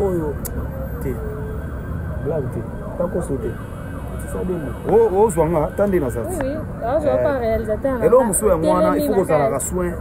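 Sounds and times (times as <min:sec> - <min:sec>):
siren sweeping up and down: 0:00.0 - 0:07.6.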